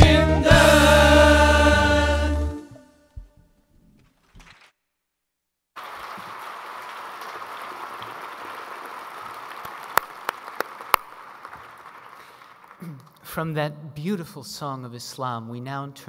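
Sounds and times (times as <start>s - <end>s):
audience applause: 5.8s - 13.0s.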